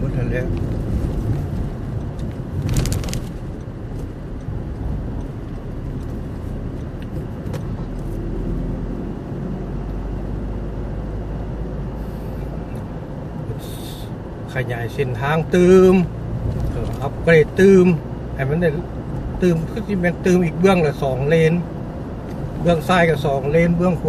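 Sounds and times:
car cabin road rumble: 0.0s - 24.0s.

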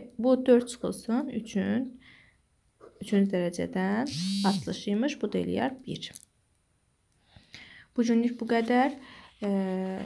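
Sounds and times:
woman speaking: 3.0s - 6.2s, 8.0s - 10.0s.

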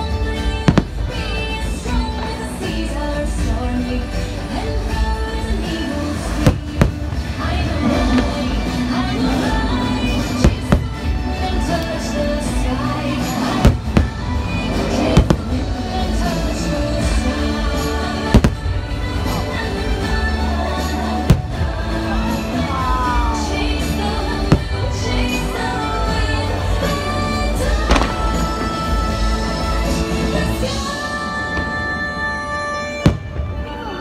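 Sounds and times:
music playing: 0.0s - 34.0s
firework bangs: 6.2s - 11.1s, 13.2s - 16.4s, 18.2s - 19.0s, 27.8s - 28.9s, 31.3s - 34.0s.

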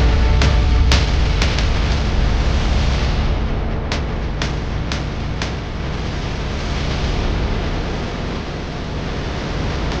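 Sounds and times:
deep rumble: 0.0s - 10.0s
steady rushing noise: 0.0s - 10.0s.

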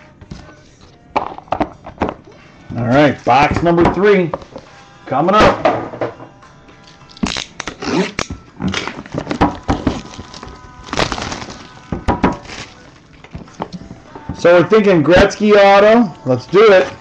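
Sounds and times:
plastic wrap tearing and crackling: 7.1s - 13.2s.

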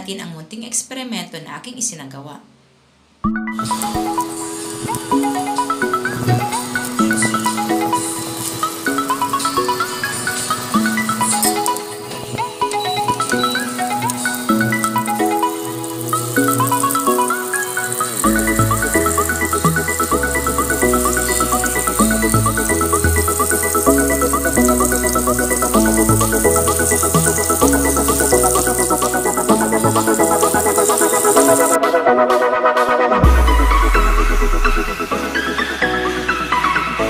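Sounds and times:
low bass line: 33.2s - 35.3s.

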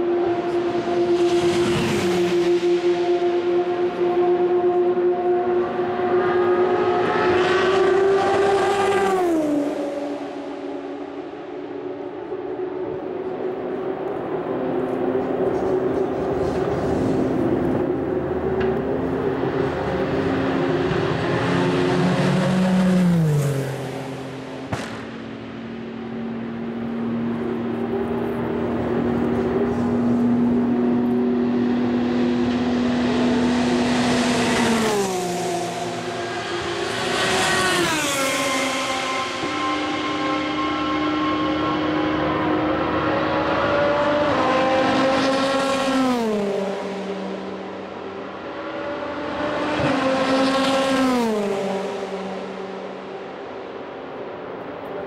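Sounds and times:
race cars passing at speed: 0.0s - 55.0s.

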